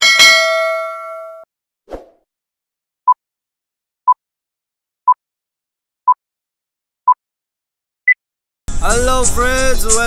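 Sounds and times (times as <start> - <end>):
bright bell ringing: 0.0 - 1.4.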